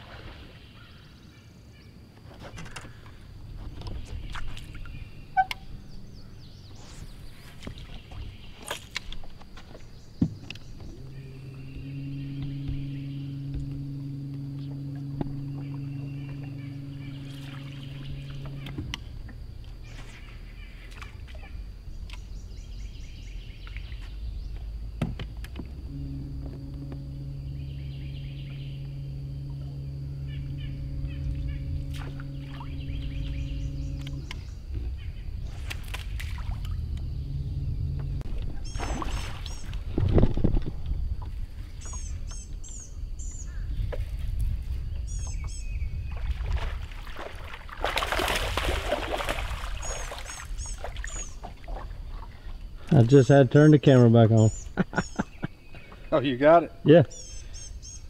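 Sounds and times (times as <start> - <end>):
low even hum: 0.0 - 58.0
birds chirping: 0.5 - 44.0, 44.7 - 46.5, 48.6 - 58.0
steady low rumble: 2.9 - 58.0.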